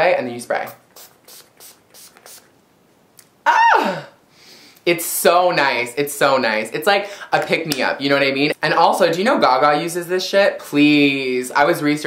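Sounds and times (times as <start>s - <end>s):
spray bottle hissing: 0.7s - 2.5s.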